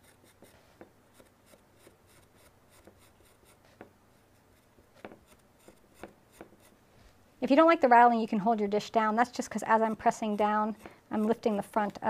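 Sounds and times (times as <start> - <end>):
carving tool scratching clay: 0.0 - 6.8, 8.8 - 12.0.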